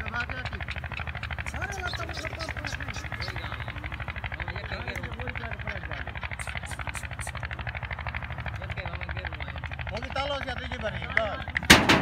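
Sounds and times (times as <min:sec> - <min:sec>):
people chattering: 0:00.0 - 0:07.8
engine running steadily: 0:00.0 - 0:12.0.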